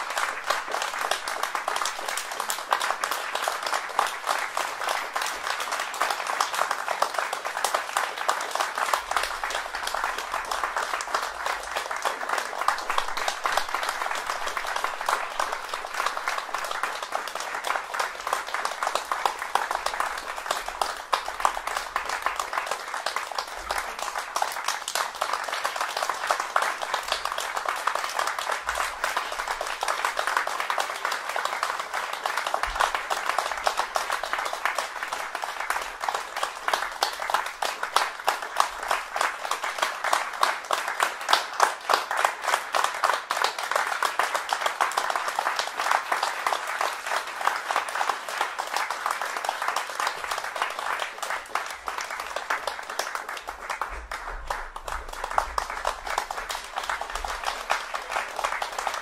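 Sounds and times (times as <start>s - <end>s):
audience applauding: 0.0s - 59.0s.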